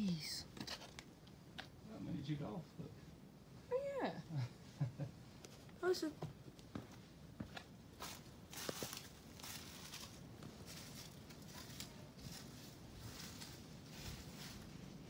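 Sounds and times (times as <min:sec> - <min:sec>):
footsteps on sticks and rubble: 0:05.5 - 0:15.0.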